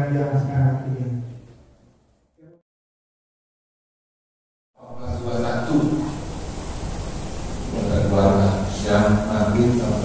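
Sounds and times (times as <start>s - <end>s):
crowded hall room noise: 0.0s - 2.3s, 4.8s - 10.0s.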